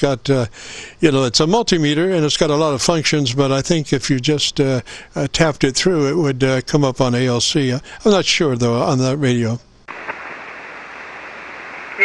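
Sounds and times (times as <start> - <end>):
radio receiver static hiss: 9.8 - 12.0.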